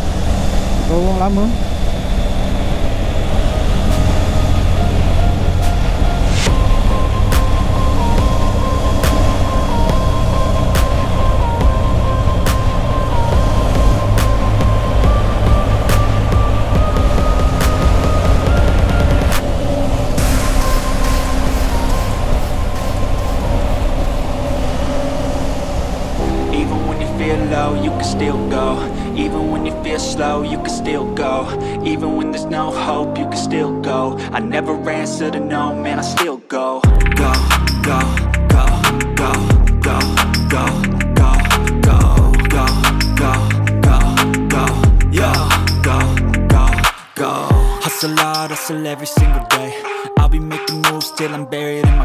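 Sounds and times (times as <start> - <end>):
wind and road noise: 0.0 - 30.2
motorcycle engine cruising: 0.0 - 31.3
background music with ticks: 3.4 - 24.3, 26.3 - 52.0.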